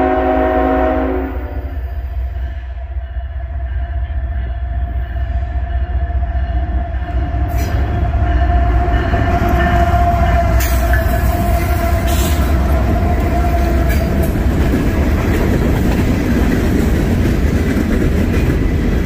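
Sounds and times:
train rumbling past: 0.0s - 19.0s.

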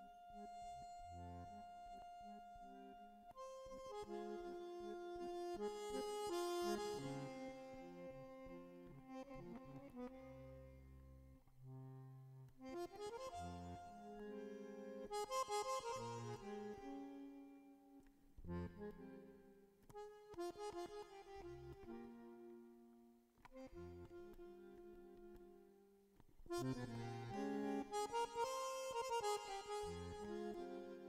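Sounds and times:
bandoneon playing chords: 0.0s - 10.8s, 12.6s - 17.4s, 26.5s - 31.0s.

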